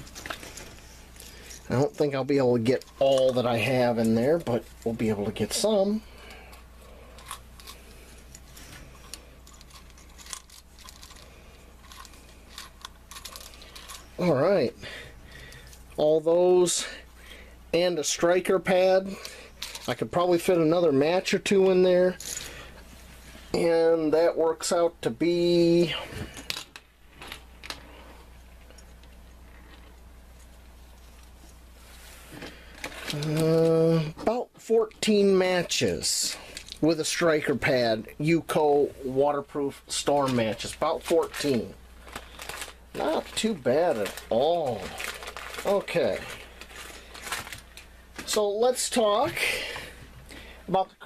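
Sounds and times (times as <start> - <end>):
low background hum: 0.0 - 51.0.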